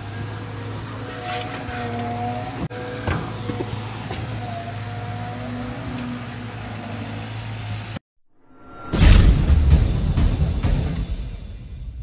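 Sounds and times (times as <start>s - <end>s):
excavator diesel engine humming: 0.0s - 8.0s.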